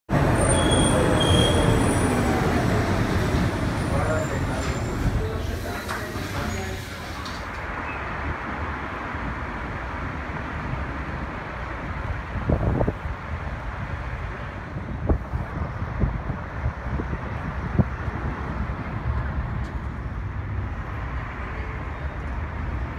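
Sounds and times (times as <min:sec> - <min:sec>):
traffic rumble: 0:00.1 - 0:22.9
wind: 0:00.1 - 0:22.9
metro train motor whine: 0:00.2 - 0:07.4
brake squeals: 0:00.2 - 0:08.2.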